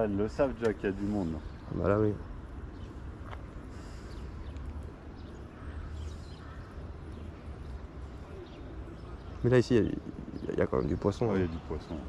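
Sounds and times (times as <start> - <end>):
faint bird chirps: 0.8 - 12.0.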